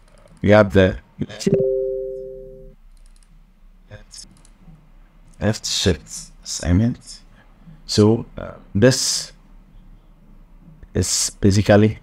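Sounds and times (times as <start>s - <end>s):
two-pitch ringing tone: 1.4s - 2.8s.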